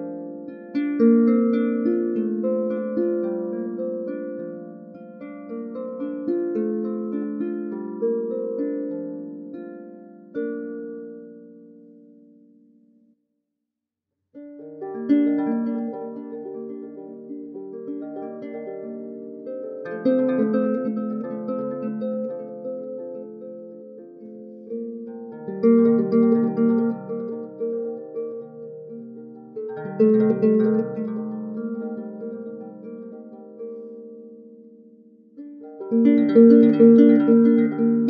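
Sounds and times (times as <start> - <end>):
solo harp playing: 0.0 - 13.2, 14.4 - 38.0.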